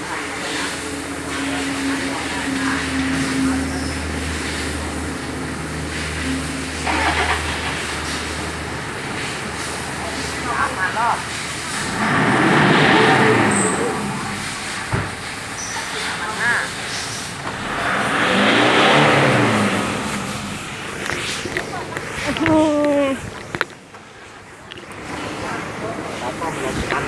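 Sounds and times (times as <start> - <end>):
diesel engine idling and revving: 0.0 - 27.0.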